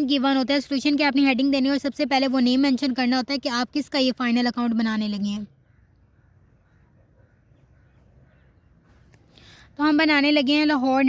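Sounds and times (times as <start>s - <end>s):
crow-like bird calls: 5.4s - 9.6s.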